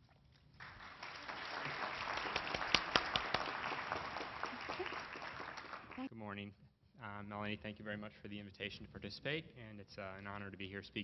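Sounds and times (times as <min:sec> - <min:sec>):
audience applauding: 0:00.6 - 0:06.1.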